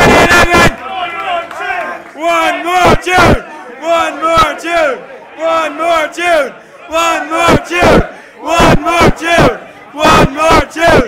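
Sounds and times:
crowd chanting: 0:00.0 - 0:11.0.

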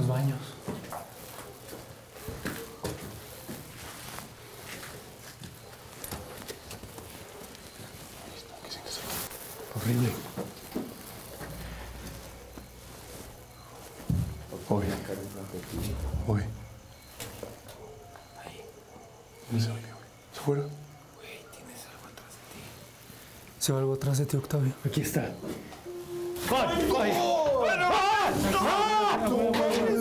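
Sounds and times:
footsteps in stone passage: 0:00.0 - 0:08.2, 0:09.0 - 0:17.7
small knocks and rustles: 0:09.0 - 0:17.8
low voices: 0:25.9 - 0:30.0.

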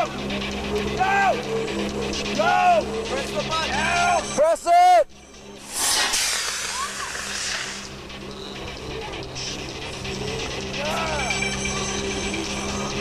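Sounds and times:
rocket launching whoosh: 0:05.6 - 0:08.0.

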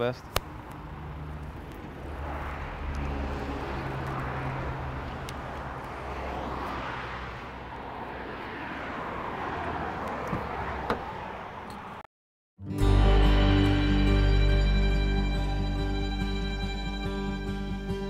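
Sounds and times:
traffic rumble: 0:00.0 - 0:12.1
low engine hum: 0:13.5 - 0:18.0.

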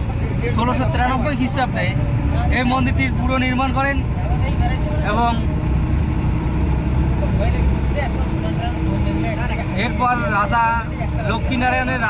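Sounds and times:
road noise inside car: 0:00.0 - 0:12.0
vehicle engine rumble: 0:00.0 - 0:12.0.

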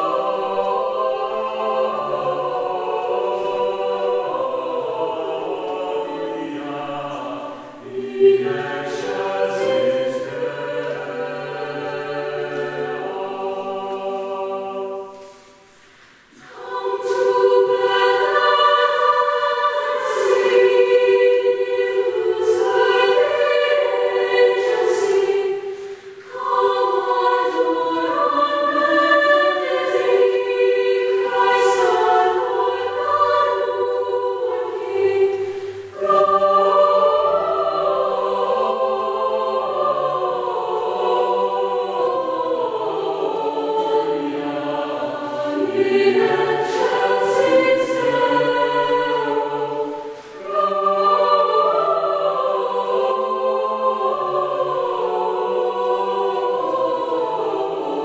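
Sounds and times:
chamber choir singing in parts: 0:00.0 - 0:58.0.

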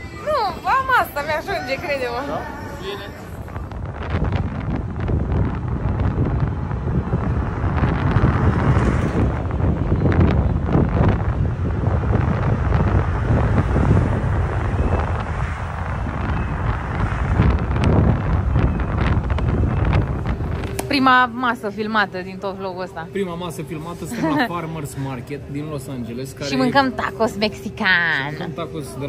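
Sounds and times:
wind buffeting microphone: 0:00.0 - 0:23.2.

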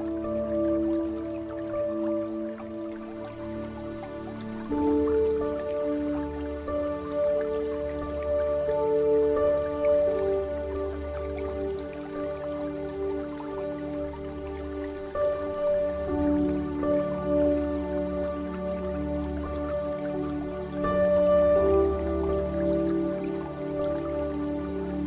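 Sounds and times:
ambient music with drone: 0:00.0 - 0:25.0
water dripping: 0:00.0 - 0:25.0.

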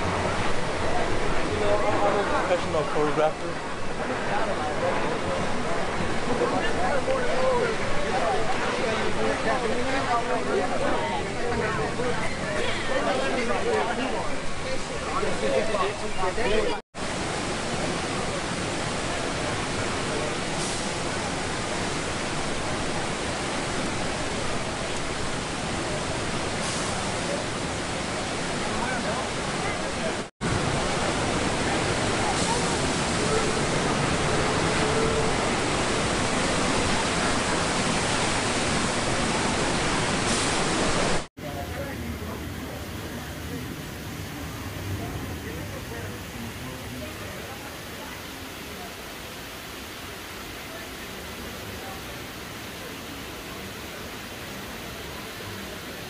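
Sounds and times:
water rushing down a flume chute: 0:00.0 - 0:56.0.

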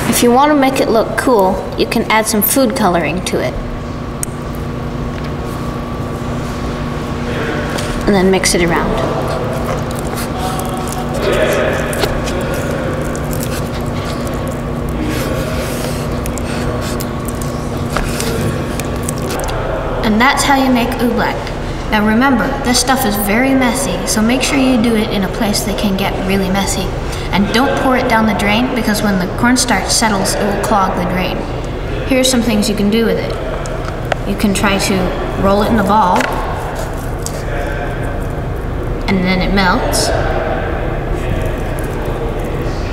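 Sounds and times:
steady low hum: 0:00.0 - 0:42.9
hands squelching wet oobleck: 0:08.7 - 0:19.6, 0:41.2 - 0:42.7.

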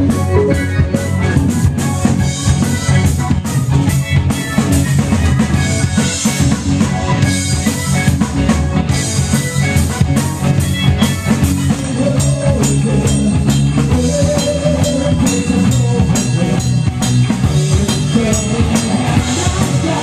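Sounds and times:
bass guitar: 0:00.0 - 0:20.0
drum kit beat: 0:00.0 - 0:20.0
electric guitar: 0:00.0 - 0:20.0
wavering lead melody: 0:00.0 - 0:20.0.

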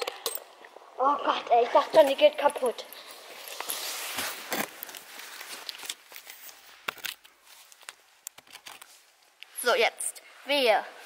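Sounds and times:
faint clicks and scuffs: 0:01.4 - 0:09.8
camera handling rustle and knocks: 0:03.5 - 0:09.0.

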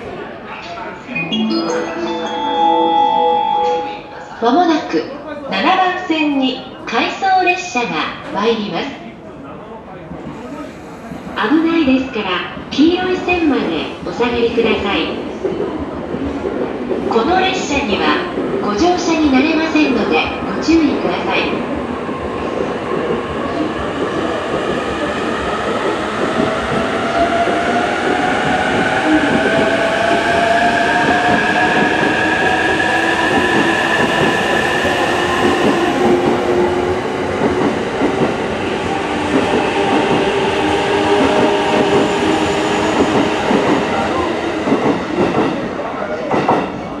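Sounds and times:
train wheels on rail: 0:10.1 - 0:47.0.

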